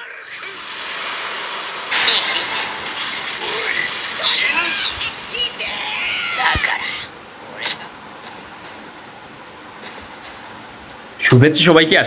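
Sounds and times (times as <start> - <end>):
rushing noise: 0.0 - 11.2.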